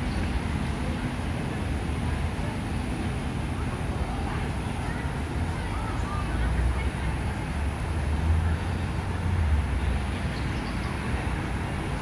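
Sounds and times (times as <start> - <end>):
low rumble of city ambience: 0.0 - 12.0.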